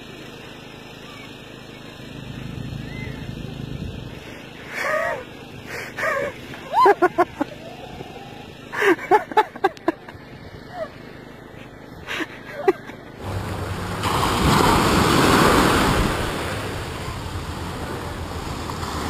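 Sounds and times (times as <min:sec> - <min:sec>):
outdoor background noise: 0:00.0 - 0:19.0
women laughing: 0:04.4 - 0:13.2.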